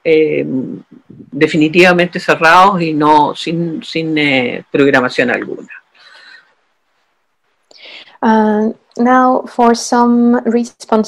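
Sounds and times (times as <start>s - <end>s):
faint breathy sound: 5.9s - 6.6s, 7.7s - 8.2s.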